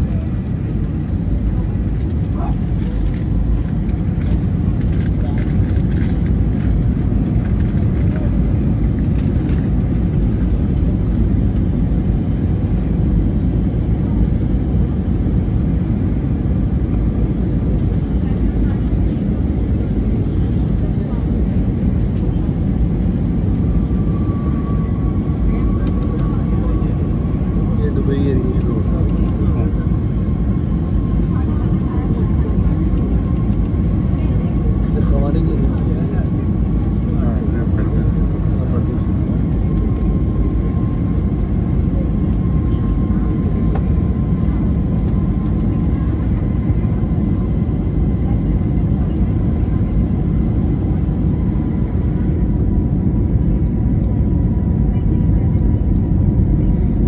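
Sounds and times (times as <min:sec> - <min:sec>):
jet engine cabin rumble: 0:00.0 - 0:57.0.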